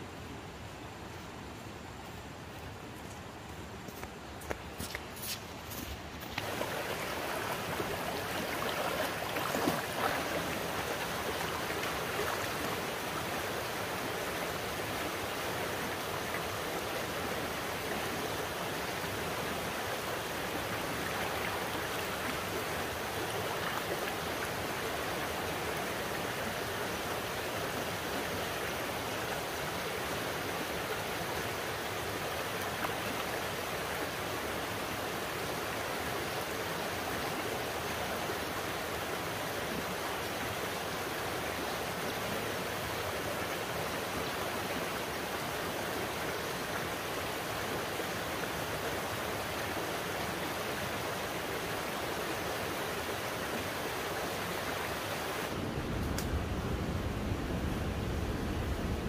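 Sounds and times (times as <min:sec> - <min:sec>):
flowing water rushing: 0:04.8 - 0:59.0.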